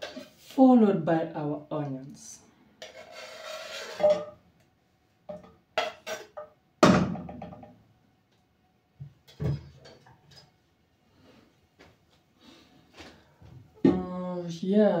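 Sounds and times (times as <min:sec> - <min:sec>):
kitchenware knocking: 0:05.3 - 0:07.7.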